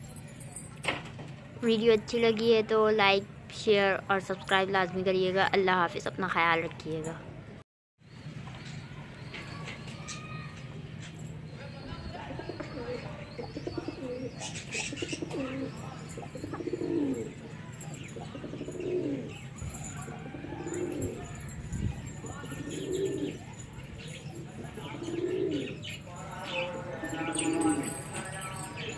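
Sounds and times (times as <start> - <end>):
pigeons cooing: 12.1 - 28.2.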